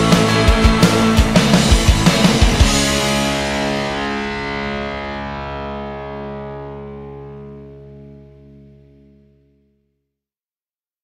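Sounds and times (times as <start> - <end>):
drum hits: 0.0 - 4.3
distorted electric guitar chord: 0.0 - 9.8.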